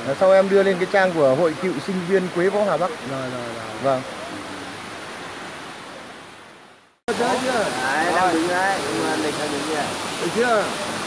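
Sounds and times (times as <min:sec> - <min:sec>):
waterfall rushing: 0:00.0 - 0:11.0.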